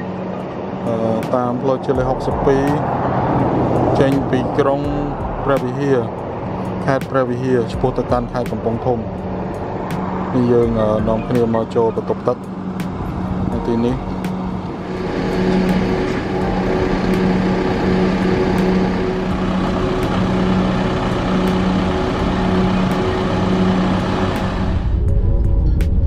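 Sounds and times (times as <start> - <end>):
minibus engine idling: 0.0 - 25.1
broad rushing noise: 0.0 - 26.0.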